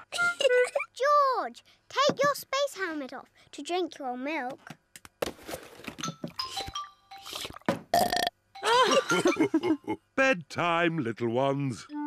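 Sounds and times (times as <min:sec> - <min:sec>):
laughter: 0:08.7 - 0:10.0.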